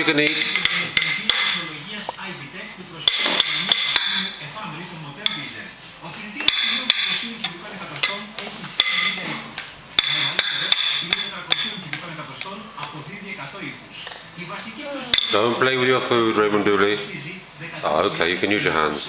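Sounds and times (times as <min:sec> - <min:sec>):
spoons clinking on plastic bowls: 0:00.2 - 0:01.8, 0:03.0 - 0:04.4, 0:05.2 - 0:05.6, 0:06.4 - 0:09.4, 0:10.0 - 0:12.6, 0:15.1 - 0:15.6.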